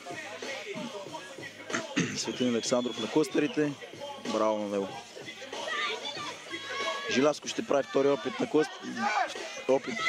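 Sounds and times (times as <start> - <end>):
crowd voices: 0.0 - 10.0
people shouting: 5.2 - 10.0.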